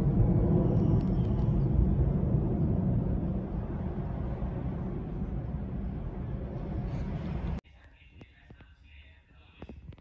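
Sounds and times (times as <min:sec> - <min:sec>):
jet engines rumbling overhead: 0:00.0 - 0:07.6.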